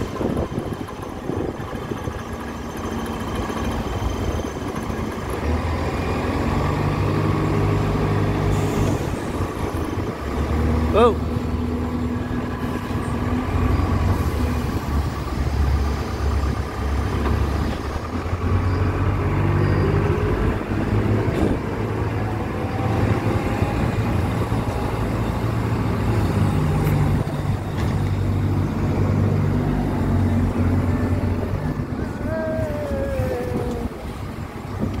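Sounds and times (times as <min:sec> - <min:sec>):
diesel engine running: 0:00.0 - 0:35.0.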